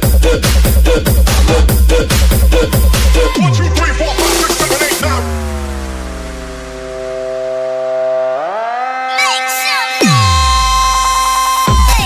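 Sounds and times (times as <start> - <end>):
deep bass note: 0.8 - 8.5
synth chord sliding down: 2.5 - 11.5.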